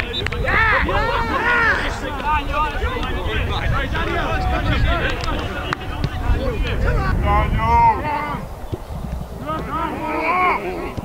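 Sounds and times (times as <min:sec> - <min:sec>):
players shouting and calling: 0:00.0 - 0:11.0
wind rumble on microphone: 0:00.0 - 0:11.0.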